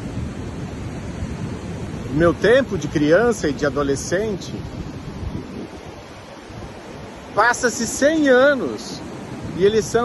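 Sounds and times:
ocean waves on beach: 0.0 - 10.0
wind buffeting microphone: 0.0 - 10.0.

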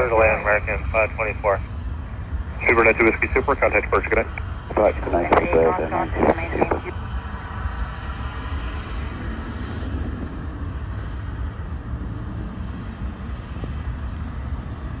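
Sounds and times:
distant jet engines roaring: 0.0 - 15.0.

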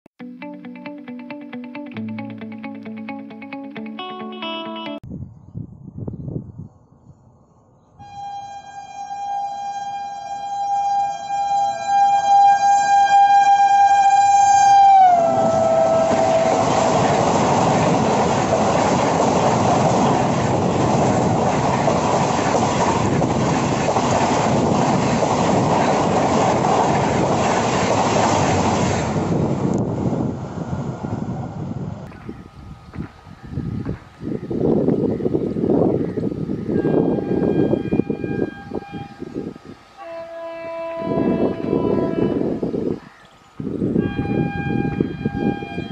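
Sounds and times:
train horn long note: 8.0 - 17.1, 36.7 - 42.9, 43.9 - 45.9
train coaches rolling past: 8.0 - 32.1, 36.3 - 45.9.

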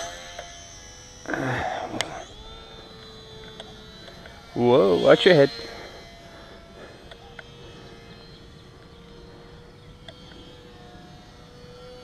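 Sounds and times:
model plane motor whining: 0.0 - 12.0.

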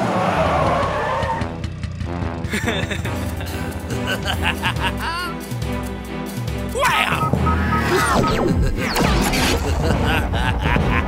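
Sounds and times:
cartoon tyres screeching: 0.0 - 1.7
background music: 0.1 - 11.0.

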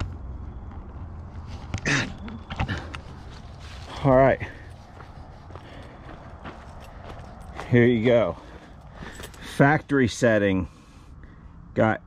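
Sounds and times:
low steady background noise: 0.0 - 12.0
footsteps on gravel: 2.5 - 10.3.

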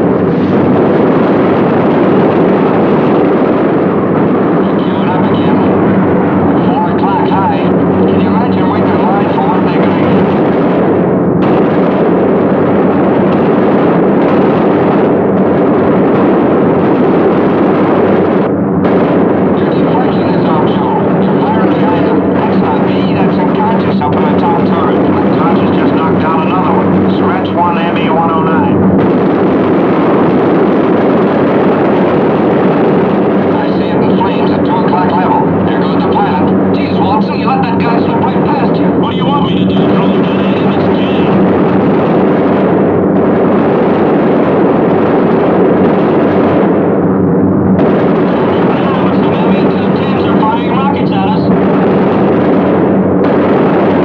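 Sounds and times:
indistinct voices: 4.6 - 10.4, 19.6 - 28.8, 33.5 - 41.4, 48.3 - 51.5.

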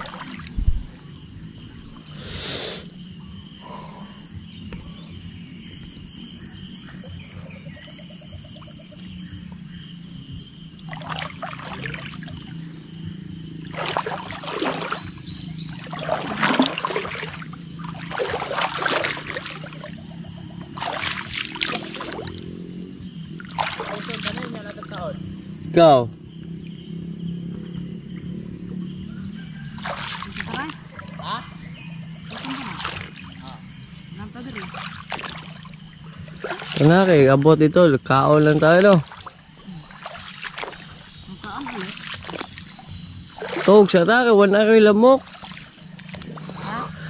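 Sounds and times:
rustling of leafy marsh plants: 10.8 - 25.0, 32.1 - 47.0.

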